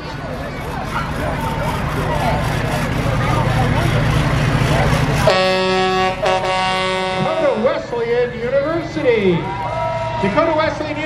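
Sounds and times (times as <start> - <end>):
truck engine rumbling past: 0.0 - 11.0
truck horn blasts: 5.2 - 7.7.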